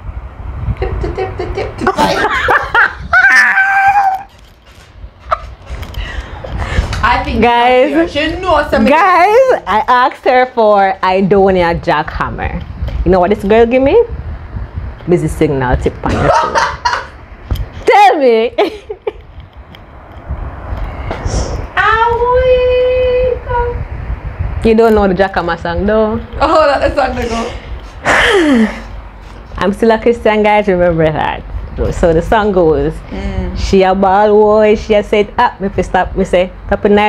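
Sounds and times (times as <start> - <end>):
woman's shrill scream of laughter: 1.8 - 4.3.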